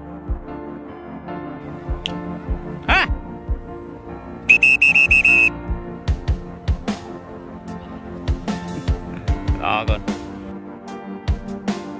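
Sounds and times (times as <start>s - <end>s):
background music: 0.0s - 11.9s
high whistle-like beeps: 4.5s - 5.5s.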